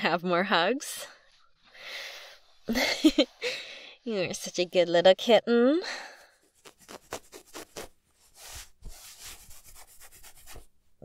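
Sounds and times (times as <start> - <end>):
fingers scratching and rubbing: 6.4 - 10.7.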